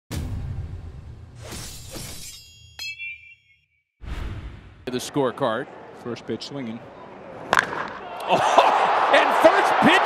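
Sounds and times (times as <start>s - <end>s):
whoosh: 4.0s - 4.9s.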